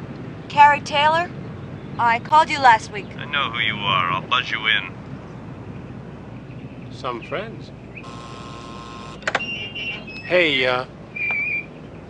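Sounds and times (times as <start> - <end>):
gate lock buzzer buzzing: 8.0 - 9.4
latch clicks: 9.2 - 9.5.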